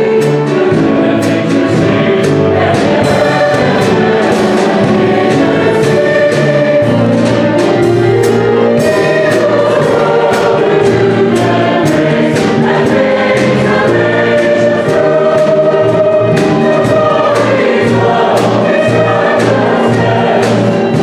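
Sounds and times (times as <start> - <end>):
choir singing: 0.0 - 21.0
piano: 0.0 - 21.0.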